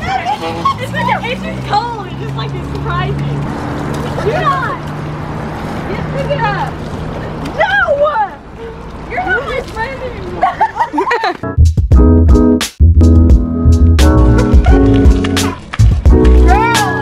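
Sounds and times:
girls calling out and chattering: 0.0 - 11.4, 16.3 - 17.0
background music with low notes: 11.4 - 17.0.

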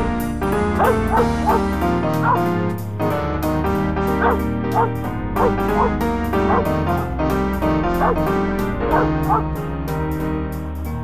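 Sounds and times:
piano-led music: 0.0 - 11.0
dog whining yelps: 4.2 - 6.7.

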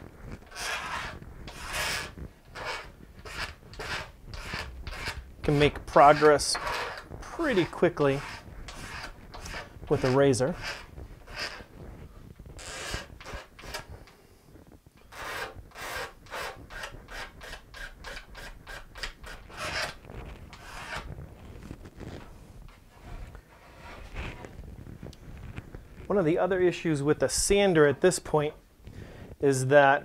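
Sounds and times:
steel blade scraping wood: 0.4 - 11.7, 12.6 - 13.9, 15.0 - 21.1, 22.1 - 24.5.

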